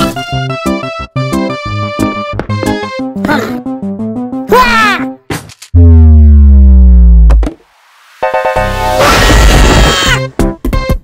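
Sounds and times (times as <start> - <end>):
synthesizer tone sliding down: 5.8 - 7.3.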